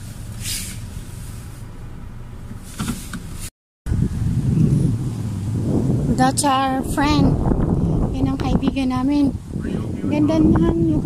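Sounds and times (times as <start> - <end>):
short hissy noises: 0.0 - 1.7
car cabin road rumble: 0.0 - 11.0.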